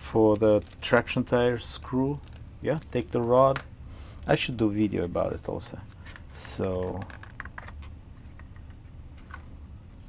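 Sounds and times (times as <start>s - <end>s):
plastic packaging clicks and crackles: 0.2s - 4.4s, 5.5s - 7.9s.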